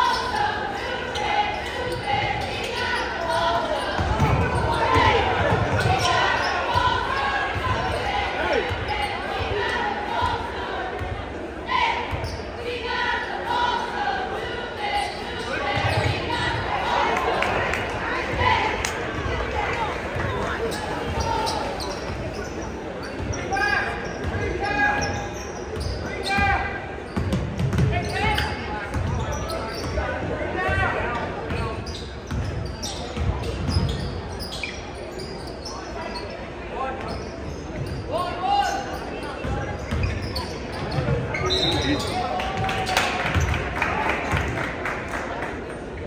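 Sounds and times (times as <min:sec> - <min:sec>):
echoing shouts and voices: 0:00.0 - 0:34.4, 0:35.7 - 0:46.0.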